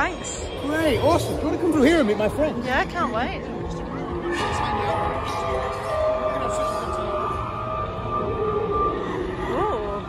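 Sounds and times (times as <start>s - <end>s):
eerie siren-like drone: 3.6s - 10.0s.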